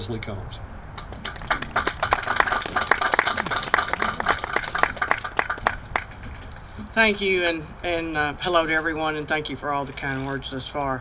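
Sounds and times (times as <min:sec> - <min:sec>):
audience applauding: 0:01.0 - 0:06.2.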